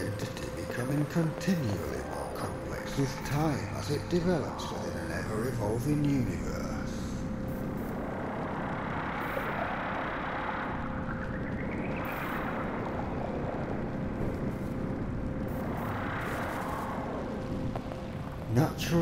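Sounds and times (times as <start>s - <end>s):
electronic rumbling drone: 0.0s - 19.0s
faint steady hum: 0.0s - 19.0s.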